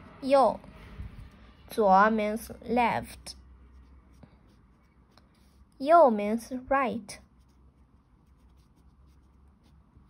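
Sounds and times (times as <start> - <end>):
felt-tip pen scratching paper: 7.2 - 10.0.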